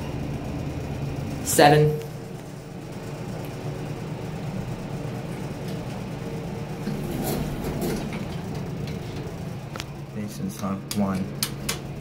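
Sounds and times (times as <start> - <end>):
elevator humming: 0.0 - 12.0
elevator doors opening: 5.2 - 9.8.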